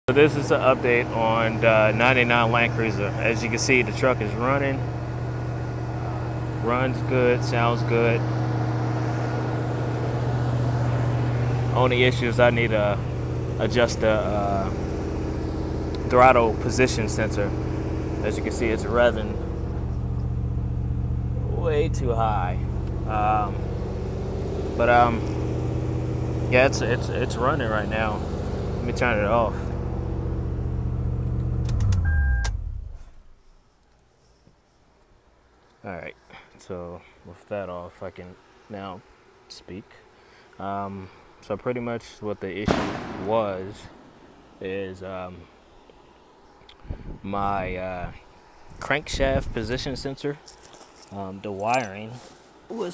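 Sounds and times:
car engine idling: 0:00.1 - 0:32.9
ignition switch click: 0:31.2 - 0:32.6.

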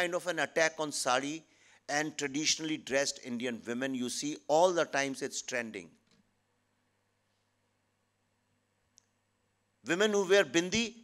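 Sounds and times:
man speaking: 0:00.0 - 0:05.9, 0:09.8 - 0:11.0.

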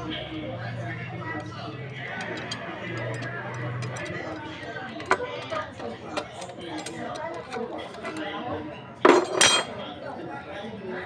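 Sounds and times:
steel bar clanking on metal: 0:01.2 - 0:08.3.

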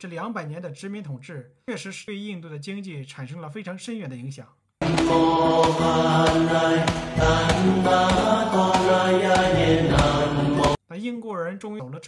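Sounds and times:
loud mantra-like chanting: 0:04.8 - 0:10.8
sharp rhythmic strikes: 0:04.8 - 0:10.8.

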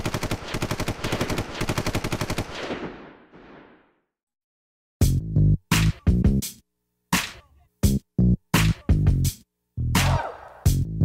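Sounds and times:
automatic machine-gun fire: 0:00.0 - 0:03.8.

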